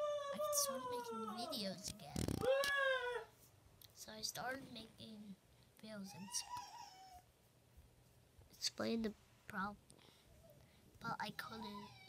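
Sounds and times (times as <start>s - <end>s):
pet animal whining: 0.0s - 3.4s, 6.1s - 7.4s, 11.4s - 12.0s
person speaking: 0.4s - 2.7s, 8.5s - 9.9s, 11.0s - 12.0s.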